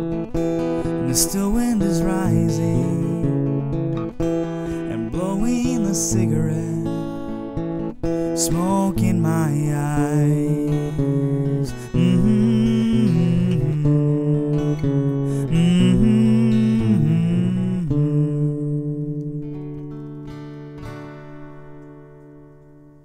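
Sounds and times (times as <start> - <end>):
acoustic guitar picked chords: 0.0 - 23.0.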